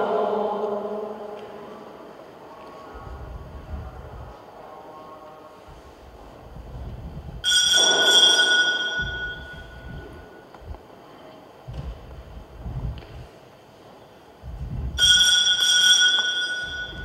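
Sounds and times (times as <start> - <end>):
faint low rumbling: 0.0 - 7.7, 8.9 - 15.2
altar bell ringing: 7.4 - 10.5, 15.0 - 17.0.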